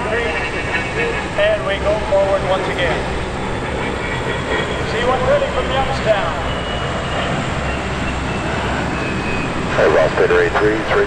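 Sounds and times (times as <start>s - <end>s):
jet engines flying by: 0.0s - 11.0s.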